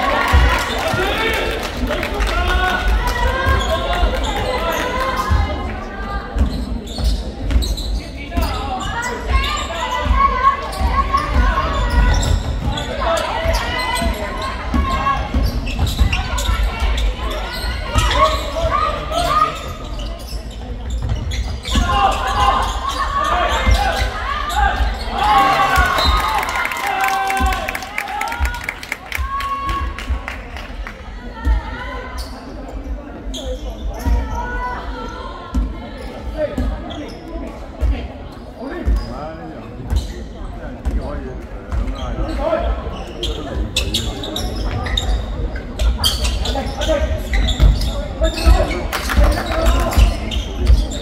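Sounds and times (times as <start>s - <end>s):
sneakers squeaking on floor: 3.3s - 26.3s, 31.9s - 51.0s
players calling out: 6.5s - 30.1s.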